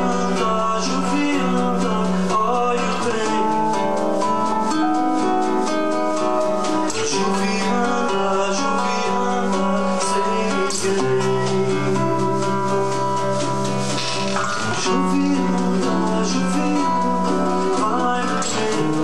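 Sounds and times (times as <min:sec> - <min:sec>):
acoustic guitars: 0:00.0 - 0:19.0
percussion: 0:00.0 - 0:19.0
piano: 0:00.0 - 0:19.0.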